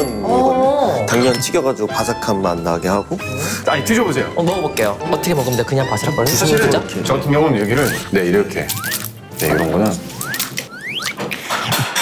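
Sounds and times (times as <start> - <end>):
crispy noodles crackling: 7.6 - 11.1
short rising whistle-like tones: 8.8 - 11.2.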